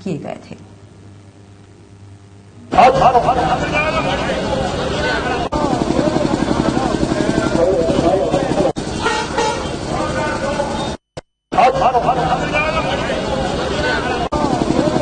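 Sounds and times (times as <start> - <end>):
crowd voices overlapping: 2.7 - 15.0
vehicle horns honking: 9.0 - 9.8.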